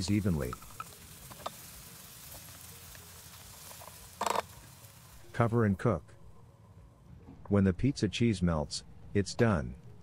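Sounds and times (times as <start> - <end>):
corn sizzling in a frying pan: 0.0 - 5.5.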